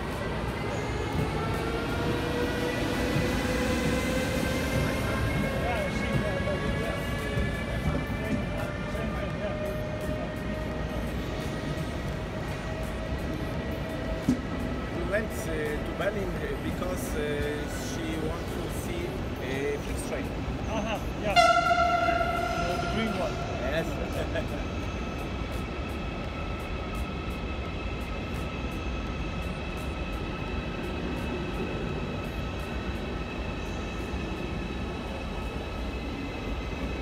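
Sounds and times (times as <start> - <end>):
station hall background noise: 0.0 - 37.0
train horn: 21.3 - 23.6.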